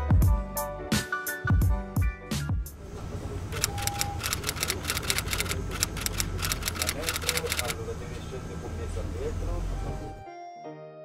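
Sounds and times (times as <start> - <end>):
bus rumbling in motion: 2.8 - 10.2.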